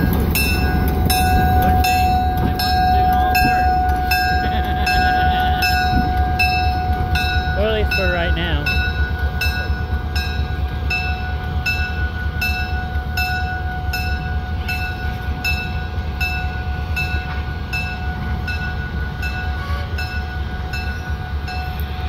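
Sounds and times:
diesel locomotive engine rumble: 0.0 - 22.0
locomotive bell ringing: 0.0 - 22.0.

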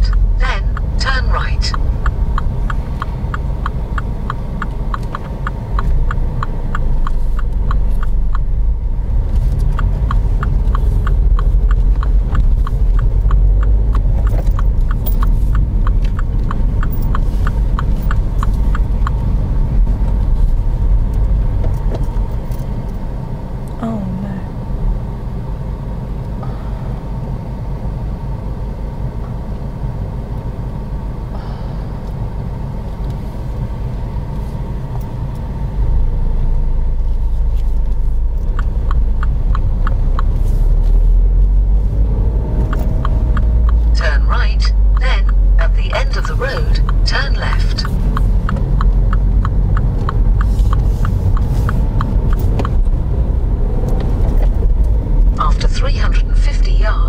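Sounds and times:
turn signal ticking: 0.0 - 23.9, 24.5 - 57.0
car engine and road noise: 0.0 - 57.0.

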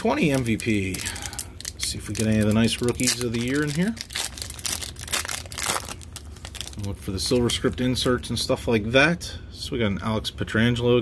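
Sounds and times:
foil wrapper crinkling and ripping: 0.0 - 7.8.

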